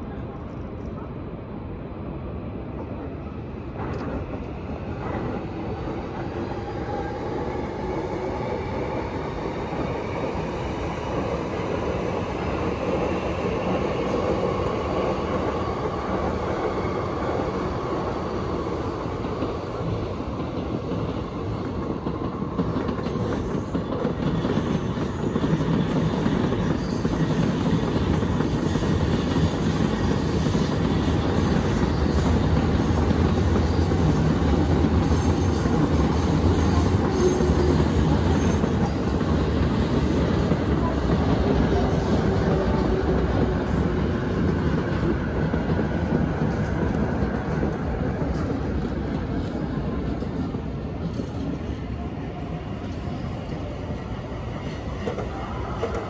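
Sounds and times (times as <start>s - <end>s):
clickety-clack of train: 0.0s - 56.0s
train wheels rumbling on rails: 0.0s - 56.0s.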